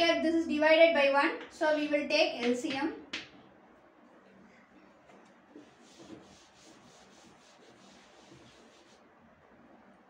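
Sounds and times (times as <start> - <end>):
cloth rubbing on a blackboard: 5.5 - 9.1.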